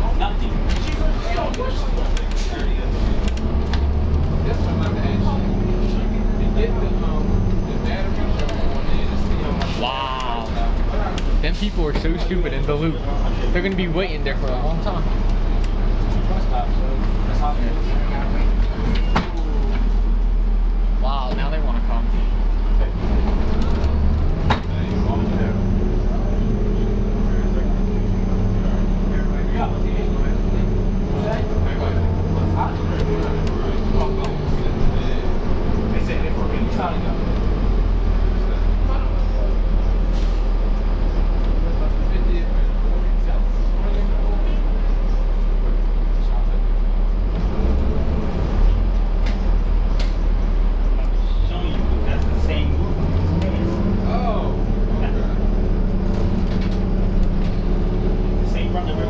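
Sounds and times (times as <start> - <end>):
bus diesel engine running: 0.0 - 59.0.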